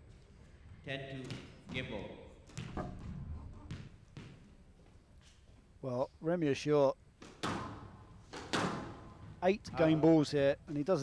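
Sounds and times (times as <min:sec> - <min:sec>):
squash ball smacks echoing: 0:07.2 - 0:09.4.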